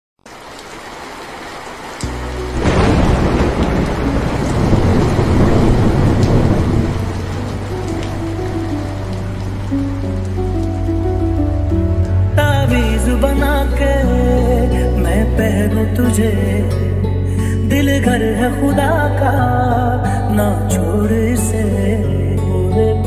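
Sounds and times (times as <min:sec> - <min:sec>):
steady rain: 0:00.2 - 0:16.2
slow melody notes: 0:02.0 - 0:23.0
thunder rumble: 0:02.3 - 0:13.2
deep bass tone: 0:02.4 - 0:23.0.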